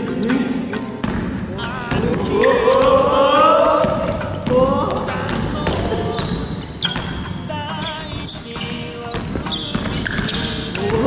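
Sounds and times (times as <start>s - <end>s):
voices calling out: 0.0s - 11.0s
basketball bouncing on wooden floor: 1.0s - 3.1s, 3.8s - 11.0s.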